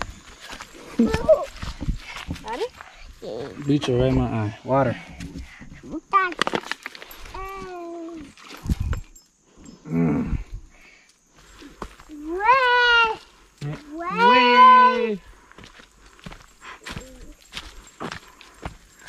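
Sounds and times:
person crying out: 0:14.0 - 0:15.1.

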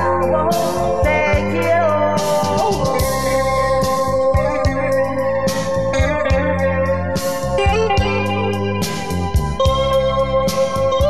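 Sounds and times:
instrumental cumbia music: 0:00.0 - 0:11.0.

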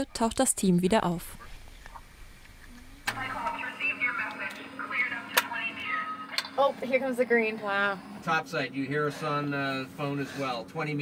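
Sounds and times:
low cabin hum: 0:00.0 - 0:11.0
sharp radio clicks: 0:01.4 - 0:06.6.

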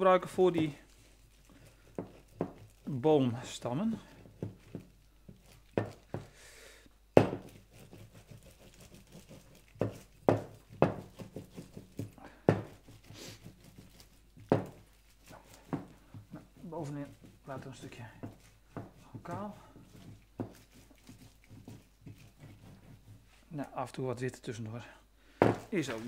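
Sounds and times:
plastic sheet crinkling: 0:00.5 - 0:06.2, 0:13.0 - 0:15.7, 0:25.6 - 0:26.0
plastic squeeze bottle squeezed: 0:08.6 - 0:15.8.

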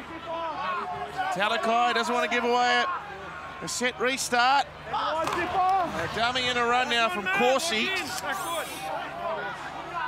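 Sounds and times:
commentary: 0:00.0 - 0:10.0
faint crowd murmur: 0:00.0 - 0:10.0
man talking: 0:03.6 - 0:08.9.

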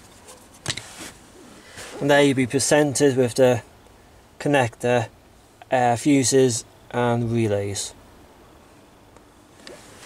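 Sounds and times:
hand movement rustling: 0:00.0 - 0:02.1, 0:09.6 - 0:10.0
background hiss: 0:00.0 - 0:10.0.

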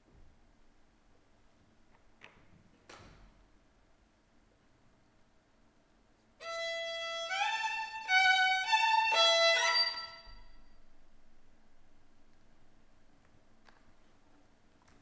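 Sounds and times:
solo violin bowed: 0:06.4 - 0:10.7.

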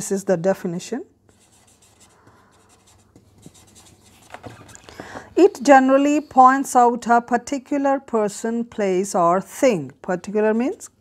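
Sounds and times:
marker pen on paper: 0:01.2 - 0:06.8.

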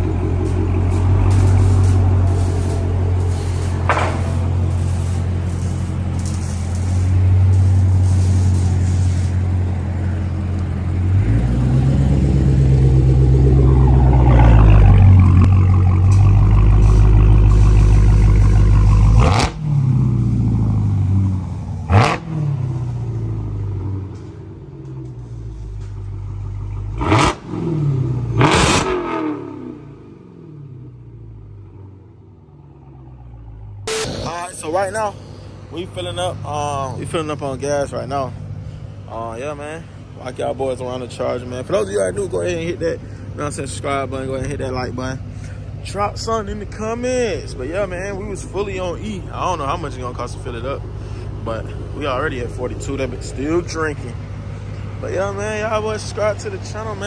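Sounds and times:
loud car engine idling and revving: 0:00.0 - 0:57.0.

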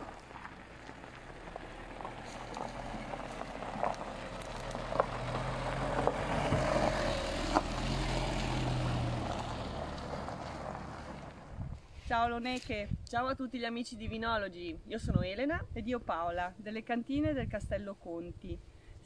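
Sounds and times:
stones clicking under tyres: 0:00.0 - 0:11.6
vehicle driving past on gravel: 0:00.0 - 0:11.9.

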